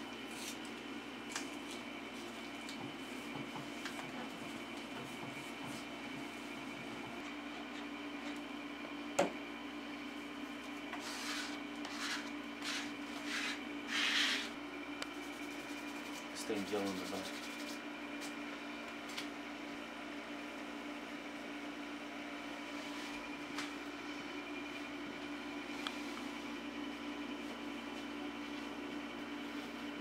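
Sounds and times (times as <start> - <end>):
steady room hum: 0.0 - 30.0.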